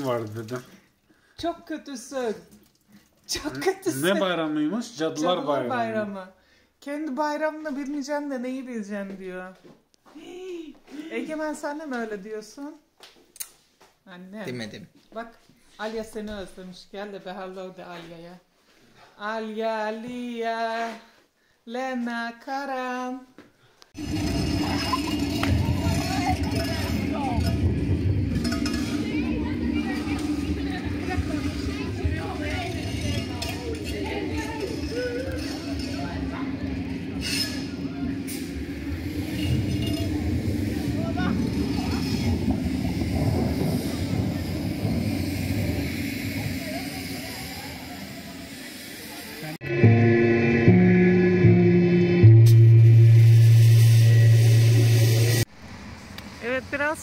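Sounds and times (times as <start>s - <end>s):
indistinct voices: 24.0s - 55.5s
music of low held tones: 49.6s - 55.4s.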